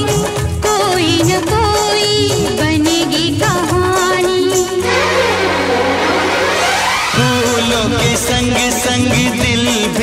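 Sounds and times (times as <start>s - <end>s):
instrumental film song passage: 4.8s - 8.0s.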